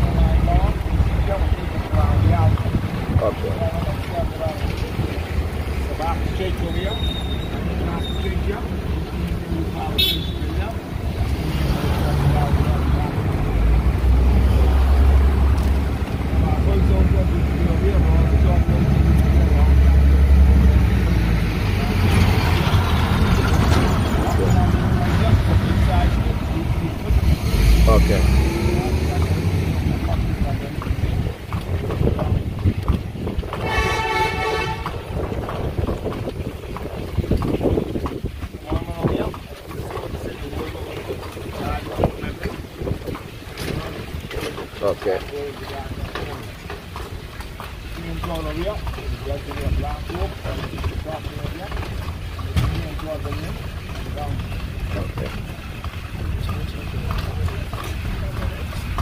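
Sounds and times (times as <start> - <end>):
truck engine rumbling: 0.0 - 59.0
vehicle horn tooting: 9.9 - 10.6, 33.6 - 35.1.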